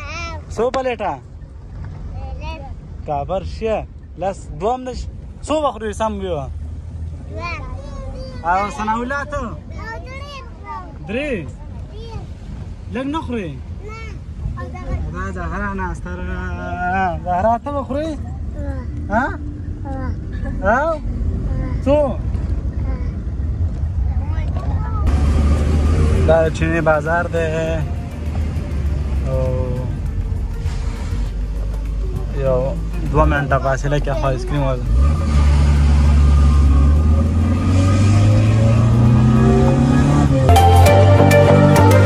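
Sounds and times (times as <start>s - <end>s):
car engine and road noise: 0.0s - 42.0s.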